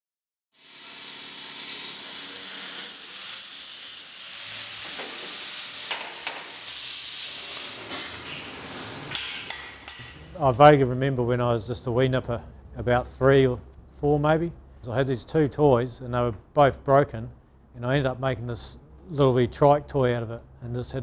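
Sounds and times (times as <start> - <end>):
steady hissing noise: 3.8 - 10.8.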